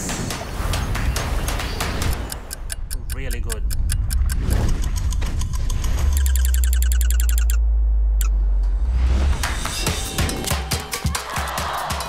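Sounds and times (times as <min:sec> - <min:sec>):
rapid electronic beeping ticks: 0:01.9 - 0:07.6
clock ticks: 0:02.0 - 0:07.6.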